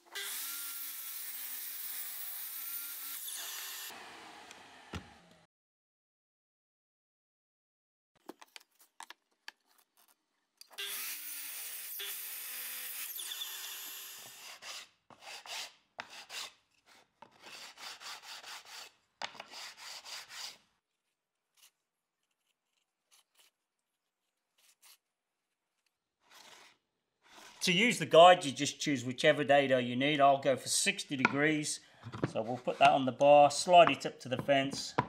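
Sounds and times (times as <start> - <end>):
sandpaper rubbing on wood: 17.4 - 20.6.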